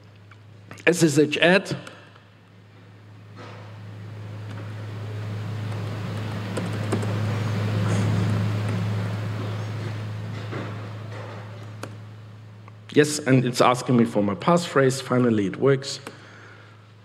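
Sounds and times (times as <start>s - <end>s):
steady electrical hum: 0.0s - 17.0s
keyboard typing clicks: 5.7s - 7.2s.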